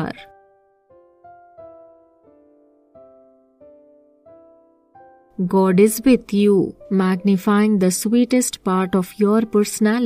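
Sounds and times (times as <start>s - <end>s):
slow piano music: 0.0s - 10.0s.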